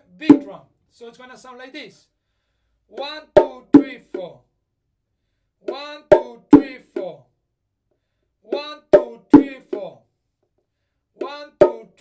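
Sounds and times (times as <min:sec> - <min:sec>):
bongos played by hand: 0:00.2 - 0:00.5, 0:03.0 - 0:04.4, 0:05.7 - 0:07.2, 0:08.5 - 0:10.0, 0:11.2 - 0:12.0.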